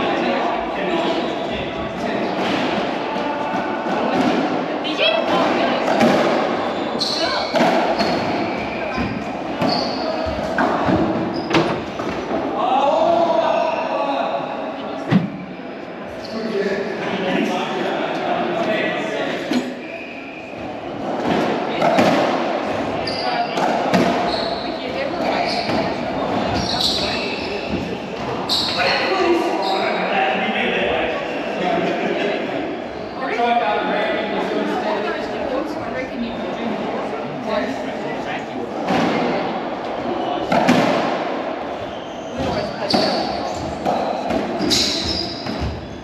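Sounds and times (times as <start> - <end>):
indistinct talking echoing: 0.0 - 46.0.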